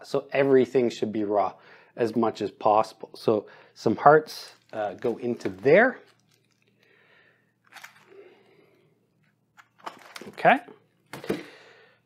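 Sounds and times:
handling raw meat in plastic tray: 0:04.4 - 0:06.6.

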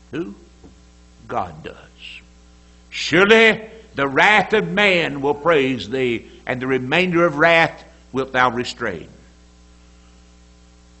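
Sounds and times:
faint hiss: 0:00.0 - 0:06.7
electrical mains hum: 0:00.0 - 0:11.0.

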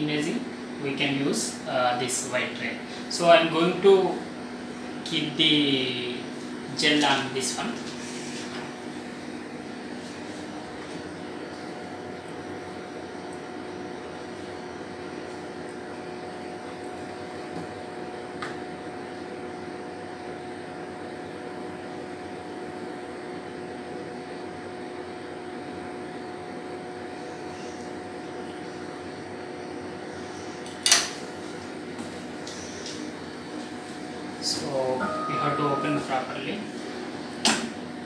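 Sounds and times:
fan hum: 0:00.0 - 0:38.0
faint steady whine: 0:34.4 - 0:37.4.

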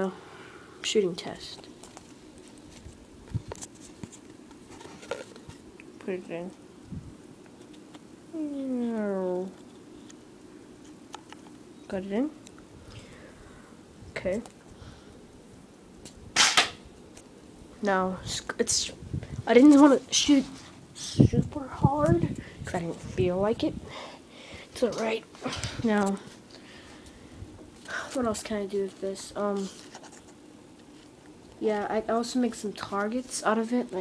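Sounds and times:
paper rustling: 0:28.8 - 0:31.1.

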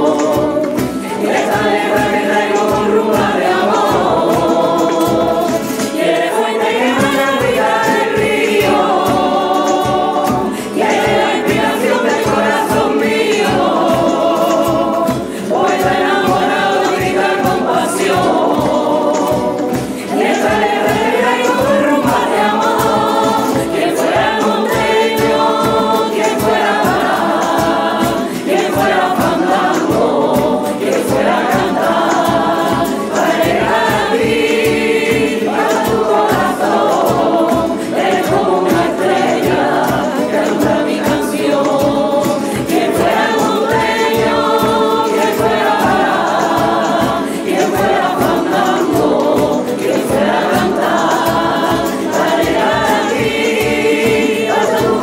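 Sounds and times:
choir singing in harmony: 0:00.0 - 0:55.0
strummed guitars: 0:00.0 - 0:55.0.

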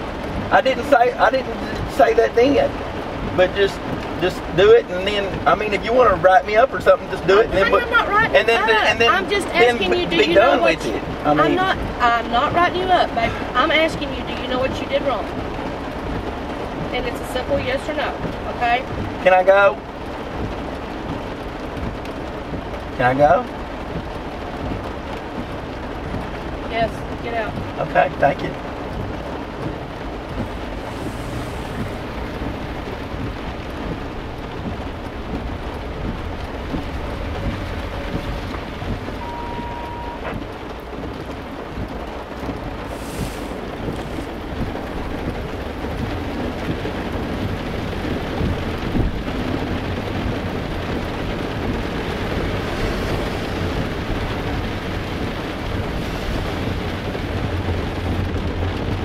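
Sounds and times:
rain on vehicle roof: 0:00.0 - 0:59.0
short beep: 0:39.2 - 0:40.4.

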